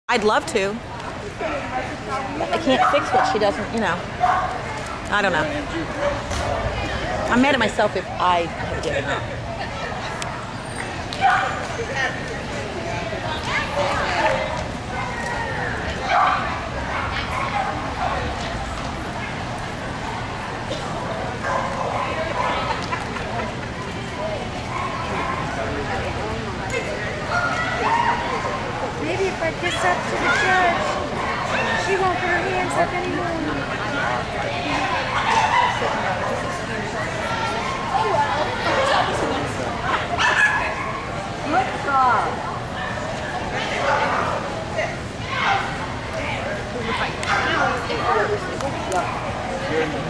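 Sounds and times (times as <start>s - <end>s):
background chatter: 0.1s - 50.0s
people's voices in echoing hall: 0.2s - 50.0s.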